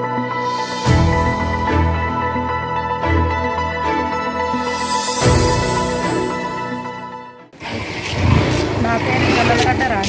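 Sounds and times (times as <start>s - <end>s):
woman talking into microphone: 8.8s - 10.0s.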